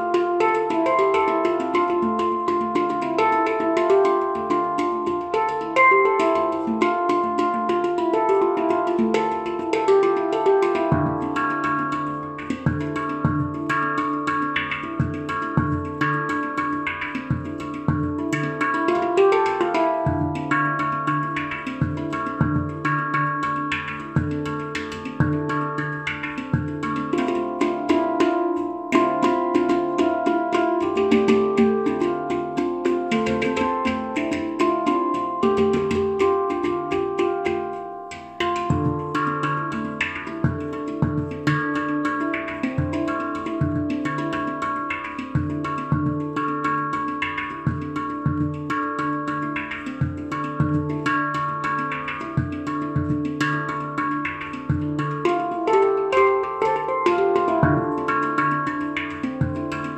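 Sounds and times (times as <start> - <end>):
handpan rhythmic notes and taps: 0.0 - 59.9.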